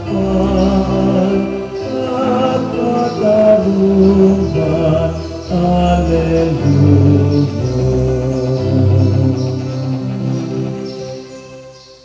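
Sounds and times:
slow church music: 0.0s - 12.0s.

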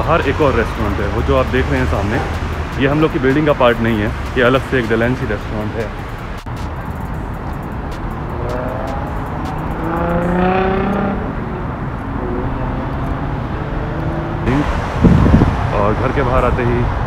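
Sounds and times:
street traffic: 0.0s - 17.0s
vehicle accelerating past: 8.1s - 15.8s.

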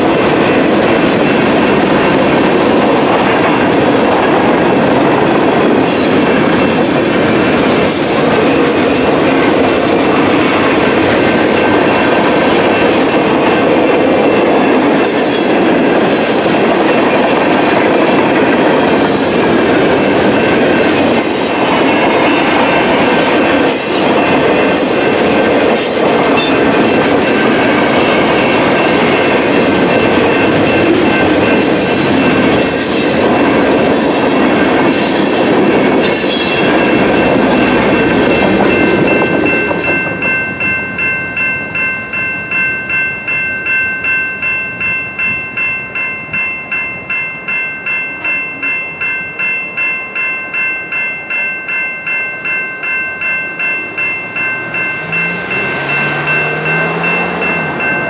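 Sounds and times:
train wheels clattering over rails: 0.0s - 40.4s
crossing bell ringing: 0.0s - 58.0s
wheels squealing: 54.0s - 58.0s.

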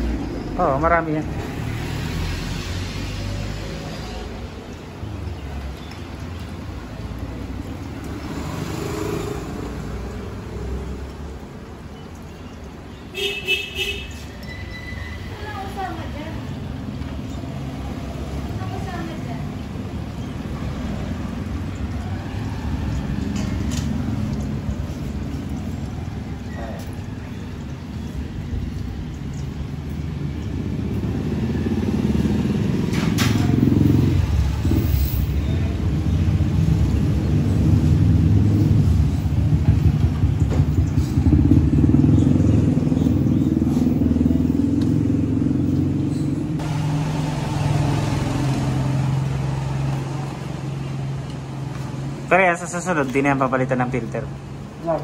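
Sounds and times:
vehicle engine rumbling: 0.0s - 55.0s.

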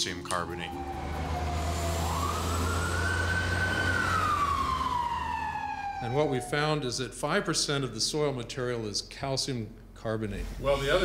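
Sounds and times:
siren wailing: 0.4s - 7.1s
low rumble of traffic: 0.6s - 7.2s.

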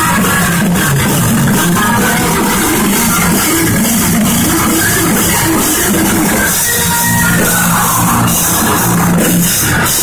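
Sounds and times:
distorted electric guitars riffing: 0.0s - 10.0s
drum kit: 0.0s - 10.0s.

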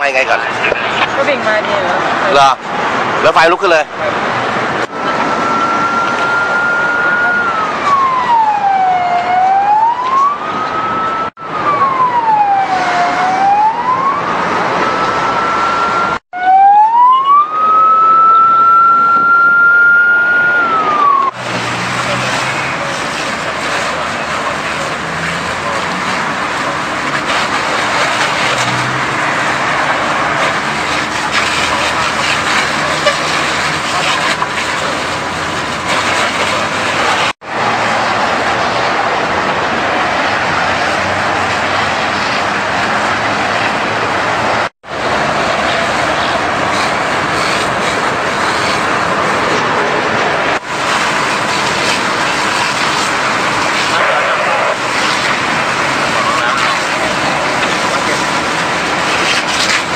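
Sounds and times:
fire engine siren wailing: 0.0s - 59.9s
fire hose spraying water: 21.3s - 44.1s, 44.9s - 59.9s.

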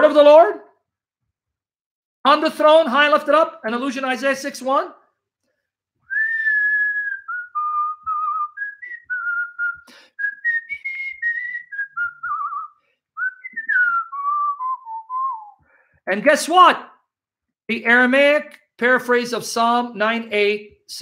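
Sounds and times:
man whistling a tune: 6.1s - 15.7s.

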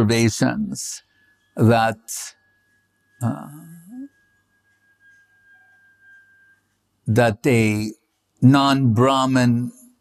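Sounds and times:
faint high-pitched tone: 0.5s - 7.9s.

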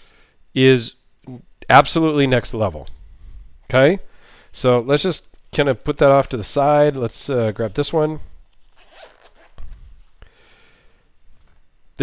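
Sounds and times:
pouch handling noise: 8.5s - 10.2s
zipper being drawn open: 8.7s - 9.8s.

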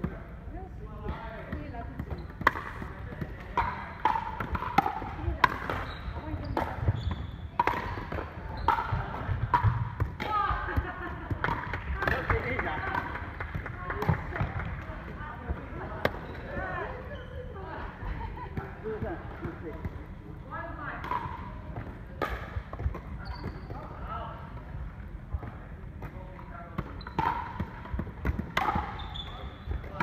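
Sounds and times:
ball bouncing on wooden floor: 1.0s - 17.0s.

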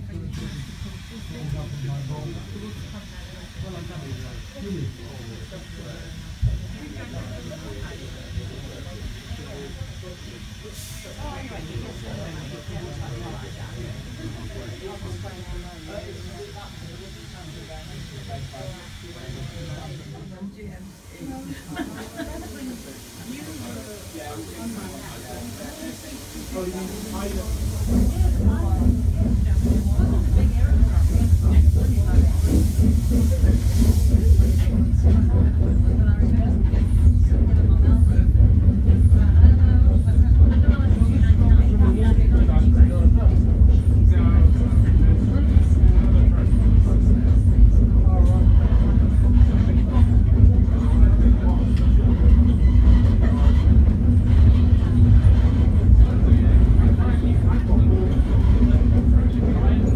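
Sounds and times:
steam locomotive rumble: 0.0s - 59.9s
steam hissing: 0.1s - 59.9s.

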